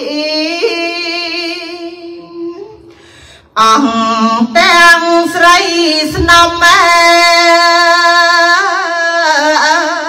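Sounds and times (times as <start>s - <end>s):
woman chanting: 3.6s - 10.0s.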